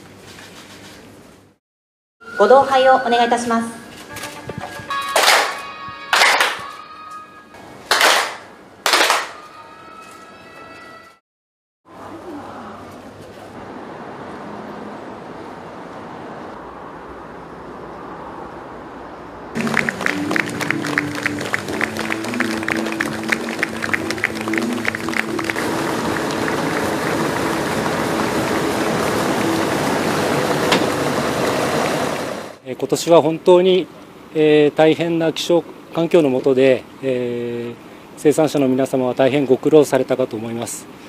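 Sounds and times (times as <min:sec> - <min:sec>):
crowd clapping along: 0:04.9 - 0:06.8, 0:07.9 - 0:09.6, 0:19.6 - 0:30.2
upbeat music: 0:19.6 - 0:30.4.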